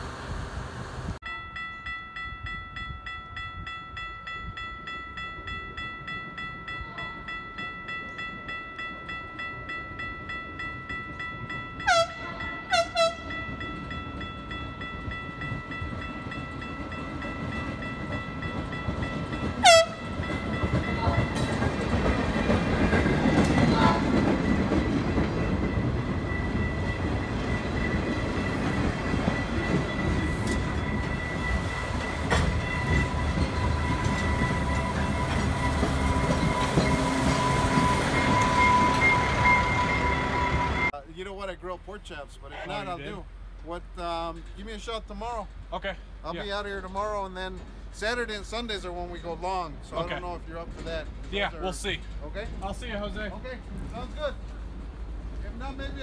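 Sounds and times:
train wheels rumbling and clattering: 7.5 - 42.2, 43.2 - 56.0
train horn blasts: 11.8 - 13.4, 19.6 - 20.2
high ringing tone: 24.4 - 40.9.

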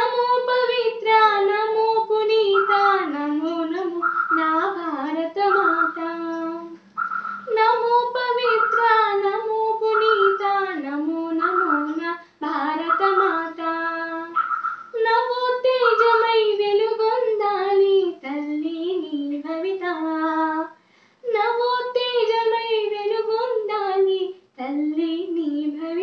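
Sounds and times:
girl singing unaccompanied: 0.0 - 26.0.

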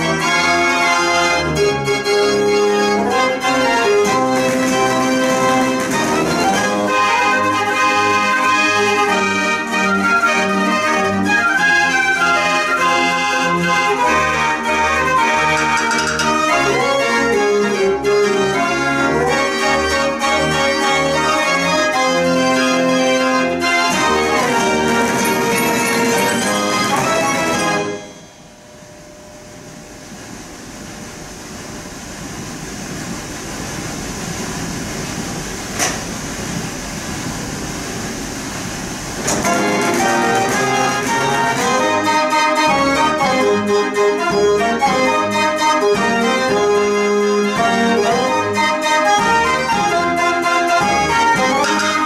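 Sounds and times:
dance organ playing: 0.0 - 28.6, 39.2 - 52.0.

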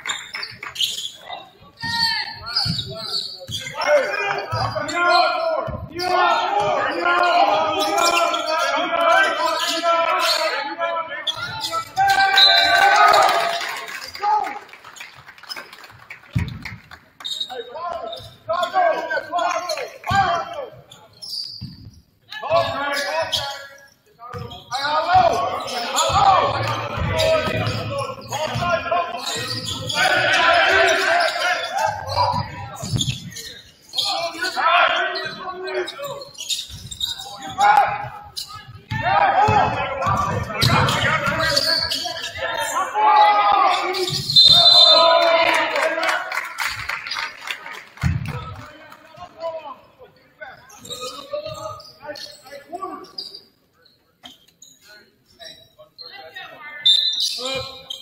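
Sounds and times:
players calling out with echo: 0.0 - 14.7, 17.2 - 53.5, 54.2 - 58.0
basketball bouncing on hardwood floor: 38.9 - 41.4.

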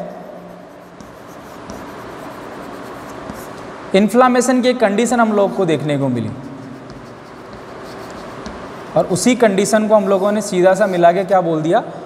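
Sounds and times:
chalk scratching on blackboard: 0.0 - 3.7, 5.4 - 11.3.

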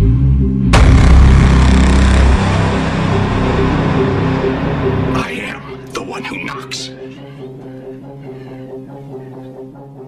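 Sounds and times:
deep bass sound-effect hit: 0.0 - 6.0
low music tones: 0.0 - 10.0.

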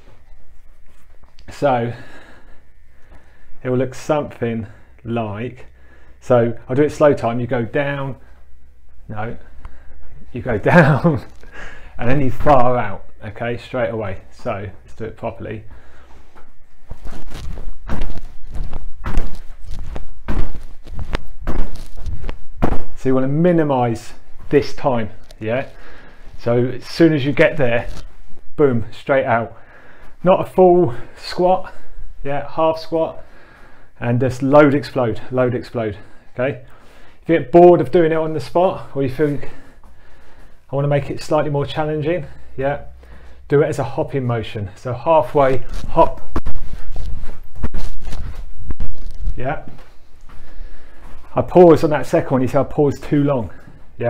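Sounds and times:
feet shuffling: 0.0 - 5.0, 6.8 - 54.0
trainers thudding on exercise mat: 17.8 - 23.0.

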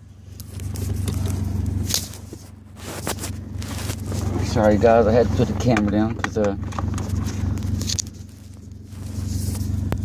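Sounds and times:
car engine drone: 0.0 - 10.0
phone rustling: 0.4 - 4.6, 6.6 - 10.0.

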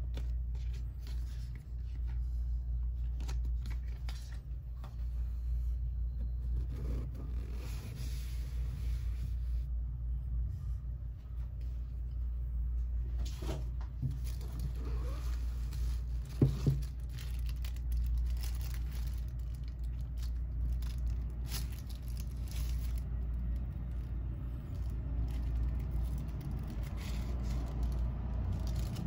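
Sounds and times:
low background rumble: 0.0 - 29.0
steady low hum: 0.0 - 29.0
plastic wrap and foam rustling: 13.2 - 29.0.

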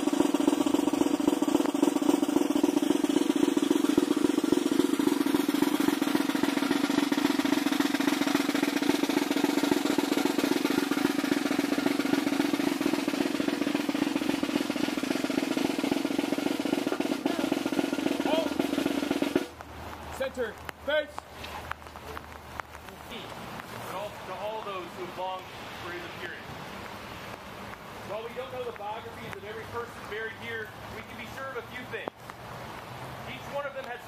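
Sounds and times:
snare drum roll: 0.0 - 21.2, 22.9 - 32.2.

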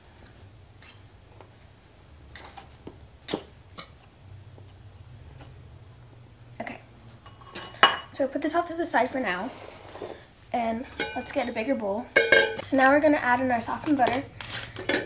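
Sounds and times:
whisk clinking in steel bowl: 12.2 - 12.6.

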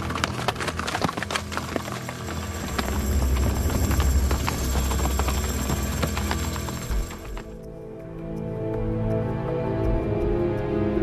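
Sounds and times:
horse hooves clattering: 0.0 - 7.9
deep rumble: 1.4 - 7.6.

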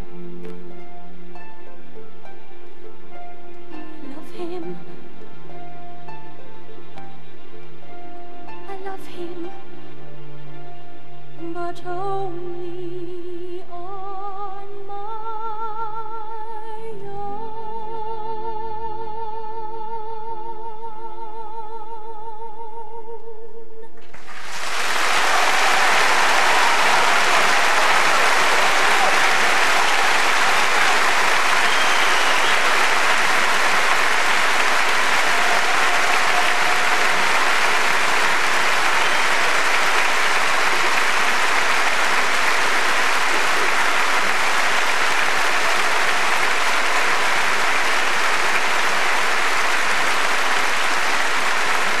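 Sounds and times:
audience applauding: 24.0 - 52.0.

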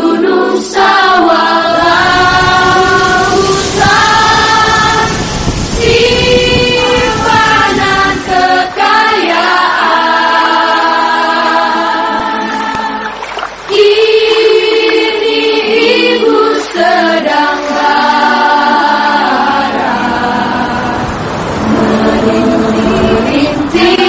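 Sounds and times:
choral singing: 0.0 - 24.0.

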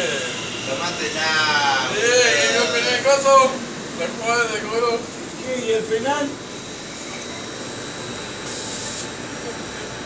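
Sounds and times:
electric train running: 0.0 - 10.0
high whine: 0.0 - 10.0
high hiss: 8.2 - 9.2.

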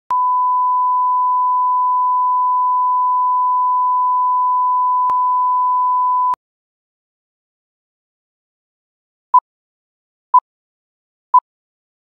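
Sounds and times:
steady test tone beep: 0.1 - 6.4.

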